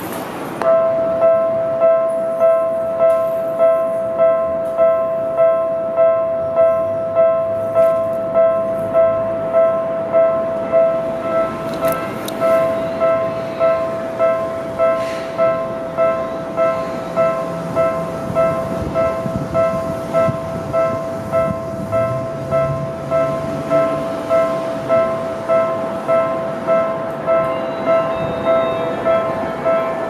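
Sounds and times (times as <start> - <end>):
level crossing bell ringing: 0.6 - 30.0
train running rumble: 7.5 - 30.0.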